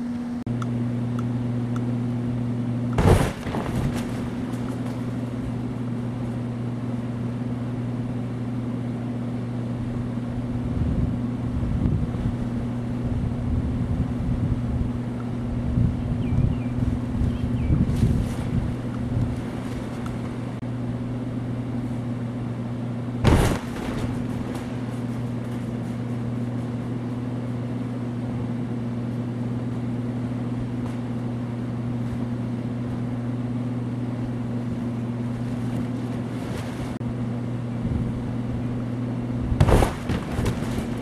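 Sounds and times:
electric blower humming: 0.0s - 41.0s
low rumbling: 0.0s - 41.0s
sharp thump: 3.0s - 5.0s, 23.2s - 25.2s.

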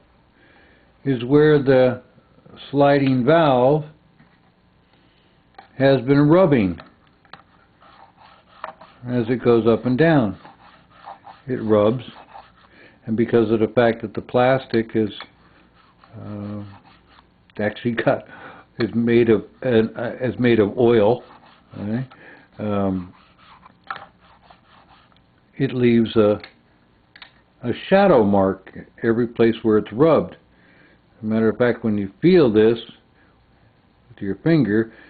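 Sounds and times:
pointer scraping and tapping on wood: 6.8s - 12.7s, 22.9s - 25.2s.

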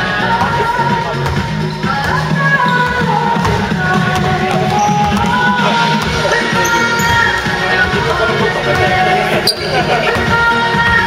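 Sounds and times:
music playing: 0.0s - 11.0s
basketball bouncing on wooden floor: 1.1s - 10.4s.

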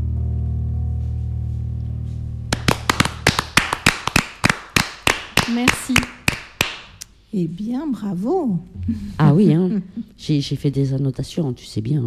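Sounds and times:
people clapping: 2.5s - 7.0s.

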